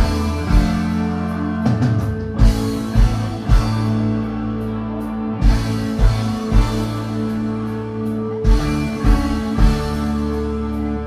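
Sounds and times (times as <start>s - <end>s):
electric guitar and bass: 0.0s - 11.0s.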